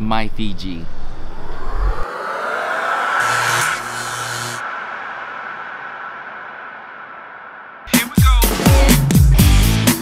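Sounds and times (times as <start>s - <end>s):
low hum: 0.2s - 7.9s
whoosh with sweeping tones: 0.2s - 8.0s.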